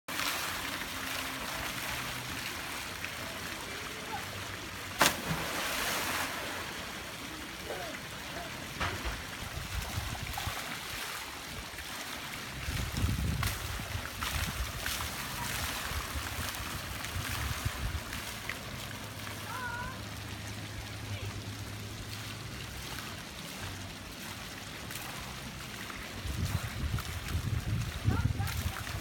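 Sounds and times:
water spilling over pool rim: 0.1s - 29.0s
splash of person jumping in water: 4.9s - 7.0s.

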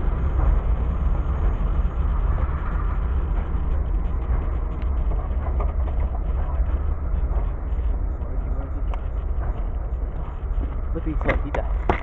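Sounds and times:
freight train rumble: 0.0s - 12.0s.

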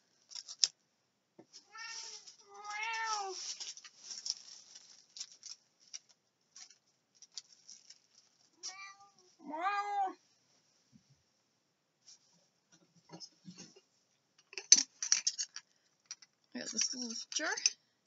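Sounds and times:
light rustling: 1.4s - 9.4s
cat meowing: 1.7s - 3.4s, 8.6s - 10.2s.

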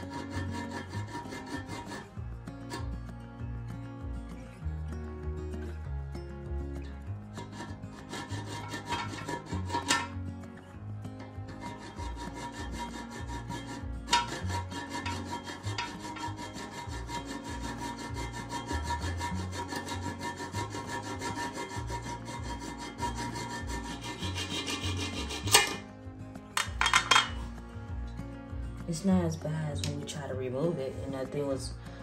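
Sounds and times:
hacksaw cutting metal bolt: 7.4s - 10.2s, 11.6s - 25.8s.

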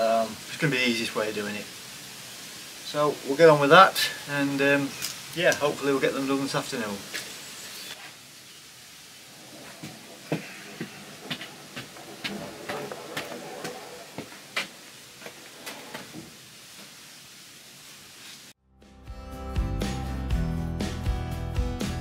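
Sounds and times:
faint hiss: 0.0s - 18.6s
footsteps: 9.2s - 17.0s.

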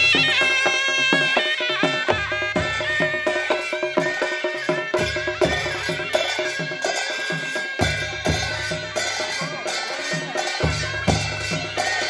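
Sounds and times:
hand cymbals clashing: 0.0s - 12.0s.

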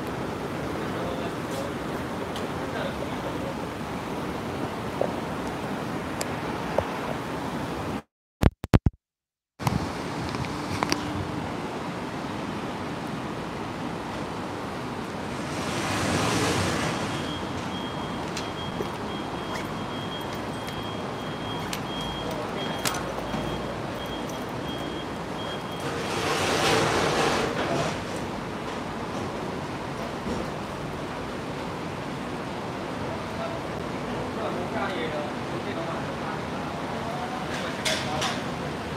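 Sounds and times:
traffic noise: 0.0s - 8.0s, 9.6s - 38.9s
water fountain splashing: 12.4s - 26.6s.

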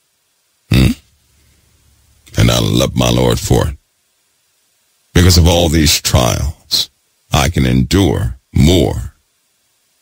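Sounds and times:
man's questioning hmm: 0.7s - 1.1s.

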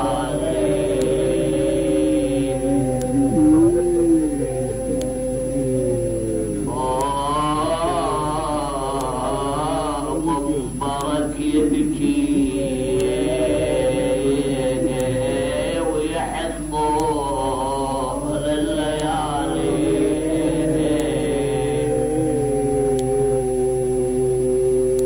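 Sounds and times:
low steady hum: 0.0s - 25.0s
man chanting a lament: 0.0s - 25.0s.

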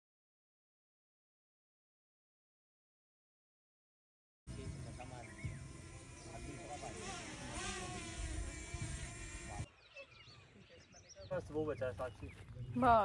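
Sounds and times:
drone propellers buzzing: 4.5s - 10.3s
outdoor ambience: 4.5s - 13.0s.

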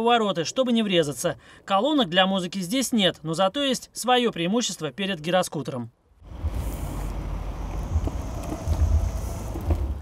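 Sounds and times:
longboard wheels rolling on asphalt: 6.2s - 10.0s.

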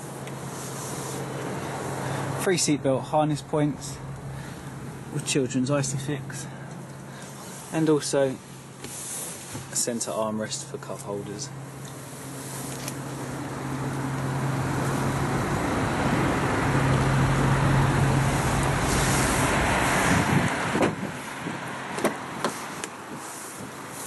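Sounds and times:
road noise: 0.0s - 24.0s
vehicle engine passing: 11.4s - 22.8s.

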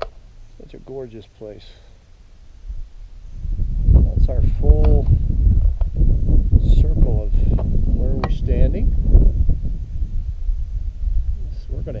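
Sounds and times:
wind buffeting microphone: 2.6s - 12.0s.

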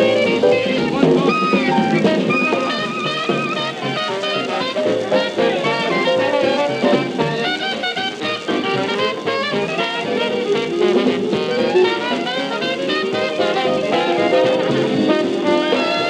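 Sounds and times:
dixieland jazz band playing: 0.0s - 16.0s.

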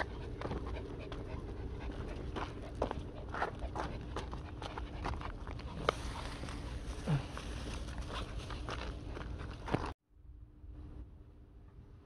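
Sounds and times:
small dogs panting: 0.0s - 10.0s
low steady rumble: 0.0s - 12.0s.

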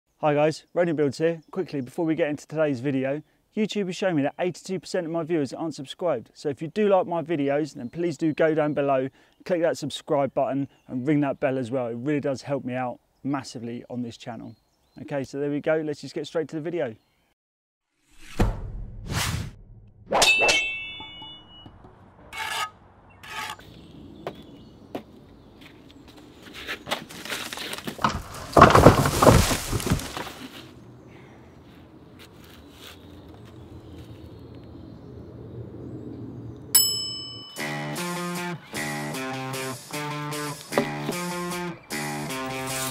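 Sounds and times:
loud metallic clang ringing: 20.2s - 21.9s
sharp metallic ding: 20.2s - 21.9s, 36.8s - 38.0s
guitar music: 37.6s - 42.9s.

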